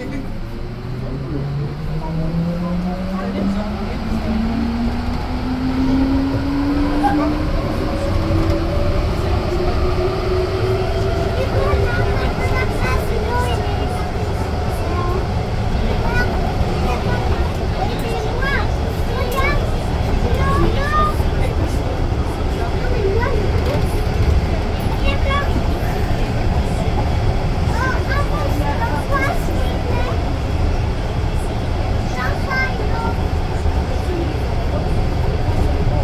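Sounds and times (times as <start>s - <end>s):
train running rumble: 0.0s - 36.0s.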